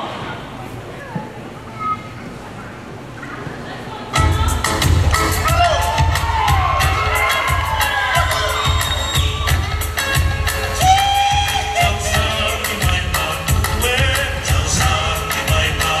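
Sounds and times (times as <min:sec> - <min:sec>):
fast drum-beat music: 0:04.2 - 0:16.0
crowd cheering: 0:04.4 - 0:10.0, 0:10.7 - 0:12.2
high whooping shouts: 0:05.4 - 0:09.7, 0:10.8 - 0:12.4.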